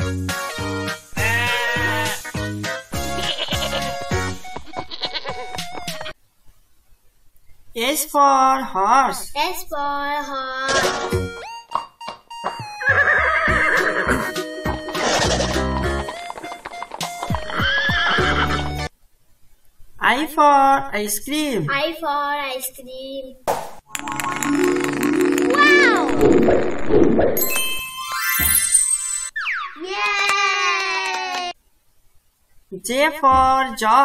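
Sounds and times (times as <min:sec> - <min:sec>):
bouncy children's music: 0:00.0 - 0:06.2, 0:10.7 - 0:12.9, 0:13.5 - 0:18.9
goat bleating: 0:01.2 - 0:02.2, 0:03.0 - 0:05.6
horse whinnying: 0:12.8 - 0:14.4, 0:15.0 - 0:15.7, 0:17.4 - 0:18.8.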